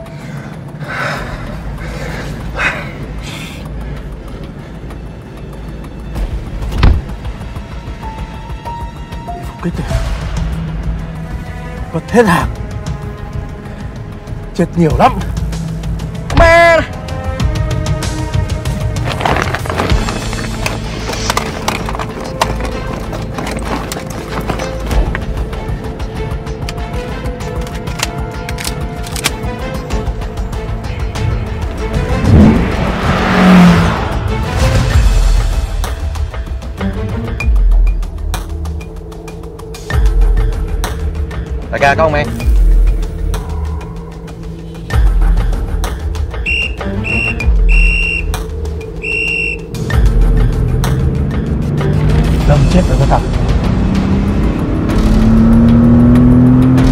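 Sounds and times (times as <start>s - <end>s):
dramatic music with deep drums: 0.0s - 56.9s
tense percussive film score: 0.0s - 56.9s
police whistle blasts: 46.4s - 48.4s, 49.0s - 49.7s.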